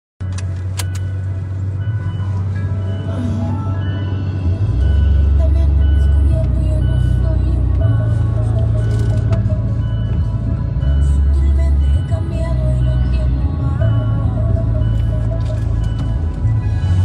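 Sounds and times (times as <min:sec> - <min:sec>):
car cabin rumble: 0:00.2 - 0:17.0.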